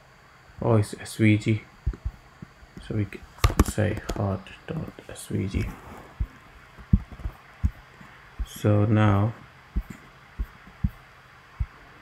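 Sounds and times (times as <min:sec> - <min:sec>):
faint room hum: 0:00.0 - 0:12.0
soft low thumps: 0:01.8 - 0:02.2, 0:06.2 - 0:08.7, 0:09.8 - 0:11.0, 0:11.6 - 0:11.8.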